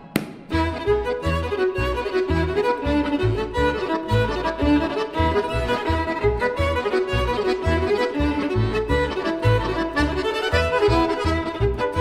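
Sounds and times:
accordion: 0:00.0 - 0:12.0
violin melody: 0:00.0 - 0:12.0
plucked double bass: 0:00.5 - 0:12.0.

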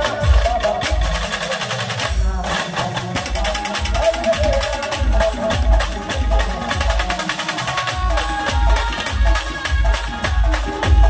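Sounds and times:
amplified street band music: 0:00.0 - 0:11.0
busy percussion: 0:00.0 - 0:11.0
heavy bass drum beat: 0:00.0 - 0:11.0.

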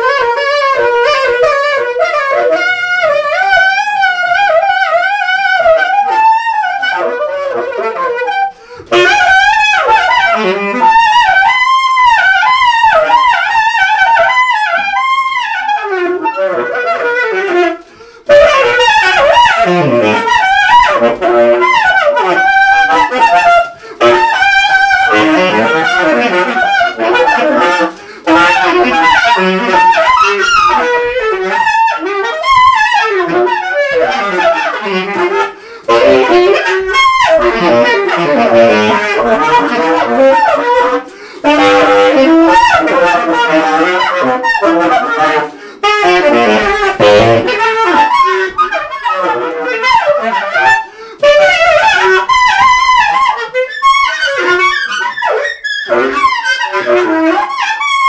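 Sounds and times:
tenor saxophone playing: 0:00.0 - 0:58.0.

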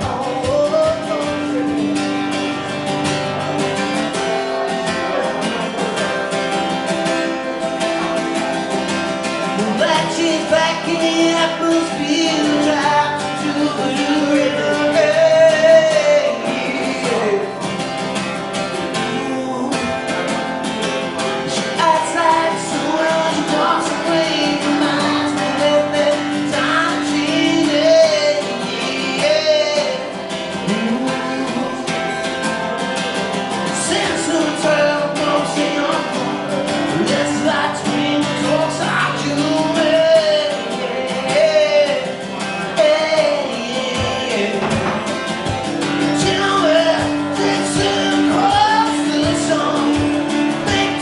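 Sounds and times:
acoustic guitar strumming: 0:00.0 - 0:51.0
man singing: 0:00.0 - 0:51.0.

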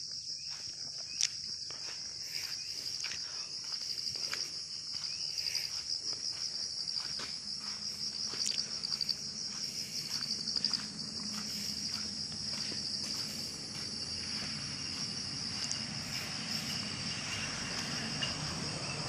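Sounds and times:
insects chorus: 0:00.0 - 0:19.0.

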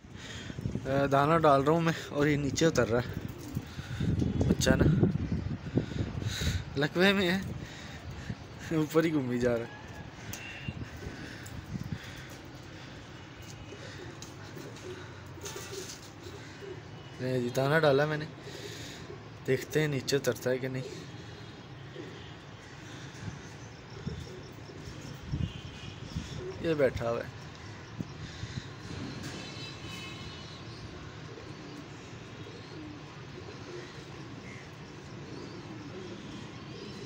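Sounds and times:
pigeons cooing faintly: 0:00.0 - 0:37.0
steady background noise: 0:00.0 - 0:37.0.

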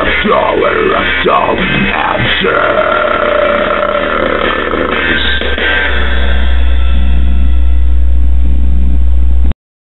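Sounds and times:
person singing rough long note: 0:00.0 - 0:06.7
surf rock backing track: 0:00.0 - 0:07.8.

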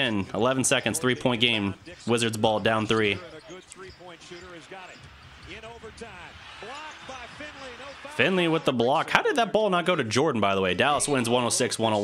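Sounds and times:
arena crowd noise: 0:00.0 - 0:12.0
commentator's voice: 0:00.0 - 0:12.0
basketball dribbling: 0:01.2 - 0:08.2.

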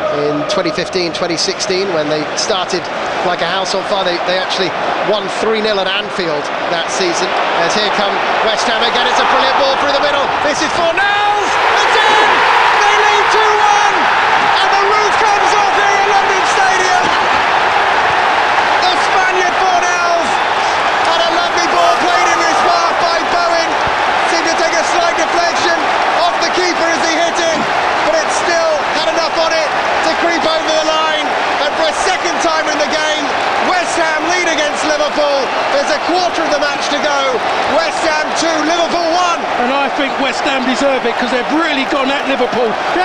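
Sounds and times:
stadium crowd cheering: 0:00.0 - 0:43.0.

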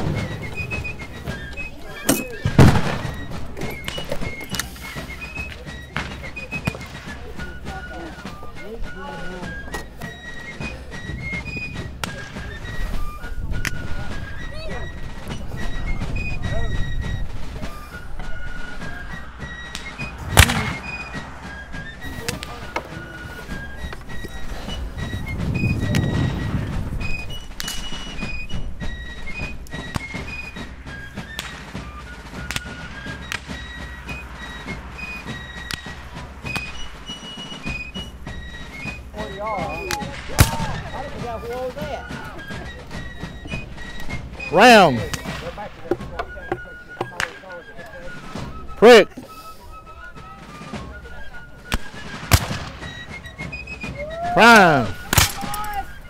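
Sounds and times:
musket fire: 0:00.0 - 0:05.3, 0:19.7 - 0:22.7, 0:40.1 - 0:41.0, 0:51.7 - 0:53.1, 0:55.0 - 0:55.7
high fife tune: 0:14.5 - 0:56.0.

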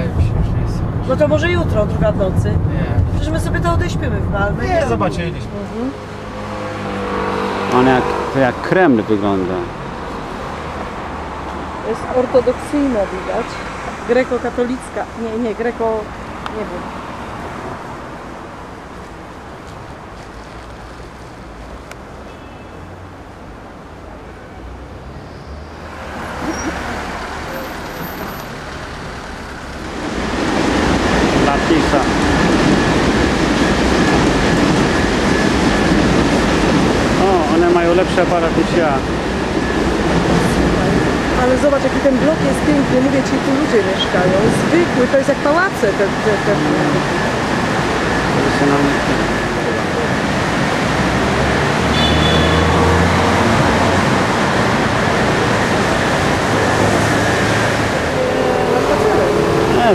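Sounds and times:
vehicle engine humming: 0:00.0 - 0:59.9.

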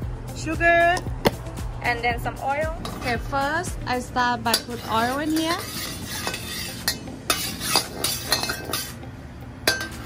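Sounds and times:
spatula scraping a steel wok: 0:04.4 - 0:09.0.

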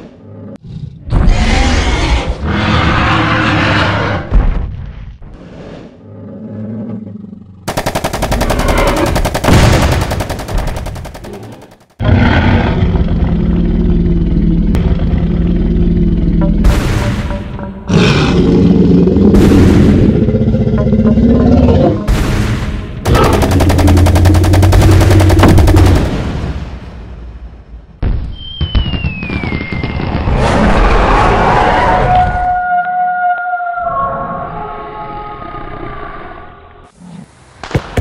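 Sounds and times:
dinosaur growling and roaring: 0:00.0 - 0:04.3, 0:05.3 - 0:07.7, 0:11.3 - 0:16.6, 0:17.8 - 0:22.1
rapid automatic gunfire: 0:07.7 - 0:12.0, 0:23.0 - 0:26.6.

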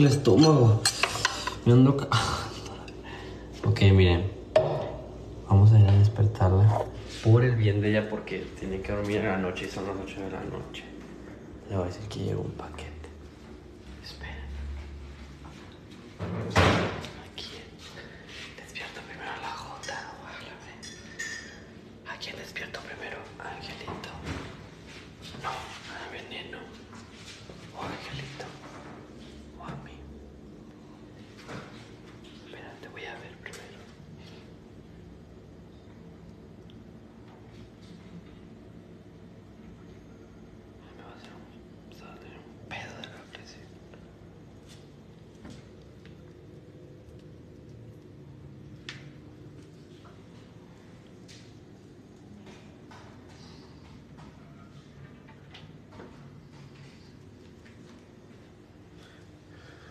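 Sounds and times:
faint low hum: 0:00.0 - 0:59.9
quiet whispering: 0:08.4 - 0:15.2, 0:17.1 - 0:21.0, 0:22.0 - 0:24.6, 0:25.2 - 0:34.6, 0:40.0 - 0:44.3, 0:50.2 - 0:55.2.

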